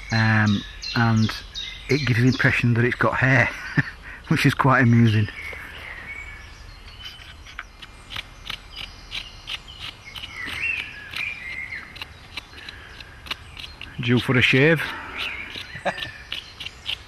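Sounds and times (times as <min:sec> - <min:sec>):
small birds chirping: 0:00.0 - 0:17.0
high bird ticks: 0:06.9 - 0:17.0.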